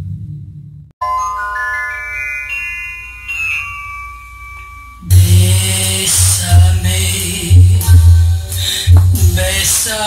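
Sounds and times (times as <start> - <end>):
recorded music with deep bass: 4.2 - 10.0.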